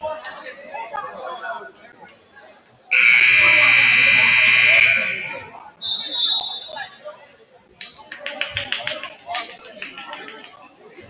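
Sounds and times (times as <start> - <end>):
crowd chatter: 0.0 - 11.0
scoreboard horn blast: 2.9 - 5.3.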